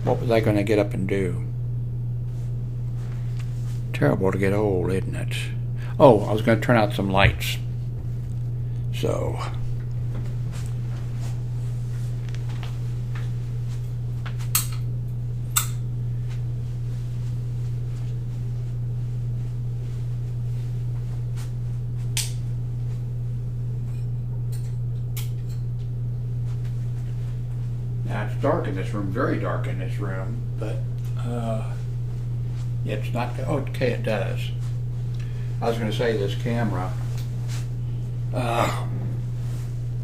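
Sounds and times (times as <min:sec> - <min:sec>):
steady low room hum: 0:00.0 - 0:40.0.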